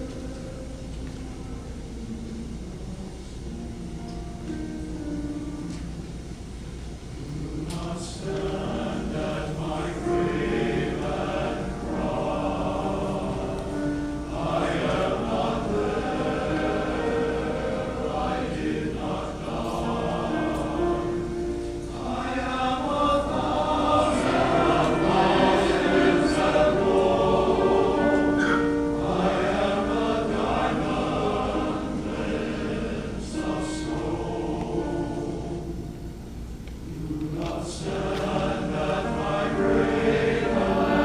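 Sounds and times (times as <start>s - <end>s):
men's chorus singing in harmony: 7.0s - 41.0s.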